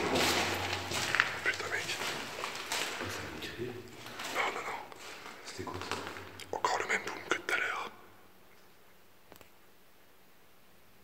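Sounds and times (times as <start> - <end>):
person whispering: 1.3 - 8.2.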